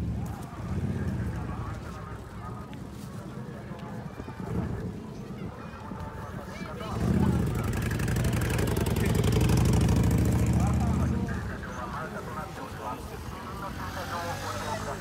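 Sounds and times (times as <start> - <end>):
crowd chatter: 0.0 - 15.0
motorcycle engine running: 6.9 - 11.7.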